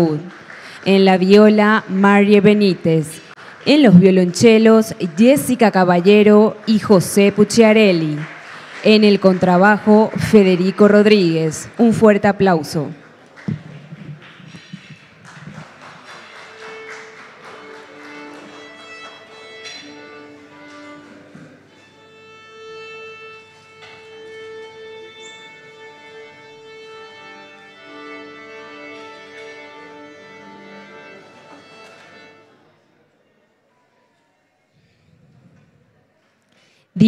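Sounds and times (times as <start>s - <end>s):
light applause: 0.0s - 22.3s, 27.8s - 32.7s
cellos tuning: 13.5s - 32.6s
violins tuning: 13.8s - 32.6s.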